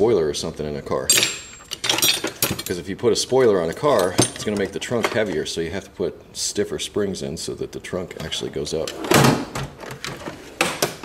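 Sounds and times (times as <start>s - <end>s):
metal drawer sliding shut: 8.8s - 11.0s
drawer rattling open: 8.9s - 11.0s.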